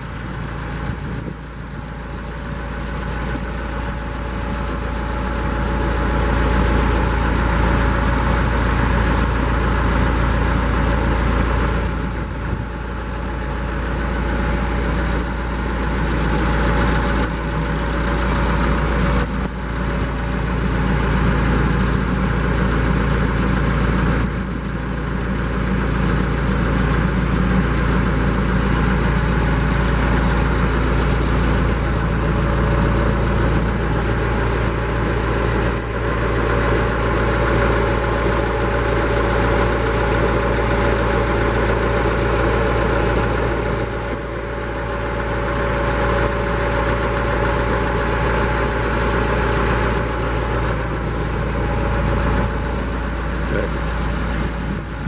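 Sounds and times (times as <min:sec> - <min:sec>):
tractor engine idling: 0:00.0 - 0:55.0.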